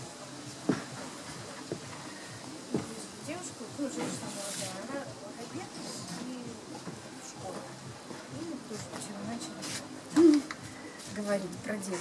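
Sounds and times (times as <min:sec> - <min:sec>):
women talking: 0:02.8 - 0:12.0.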